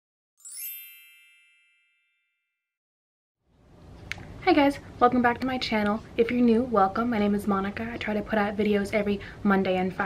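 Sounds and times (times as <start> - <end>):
bright shimmering chime: 0.4 - 2.4.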